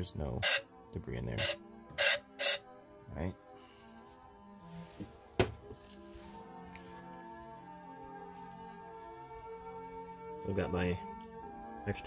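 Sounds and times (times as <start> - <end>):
aerosol spray can bursts: 1.4 - 2.6.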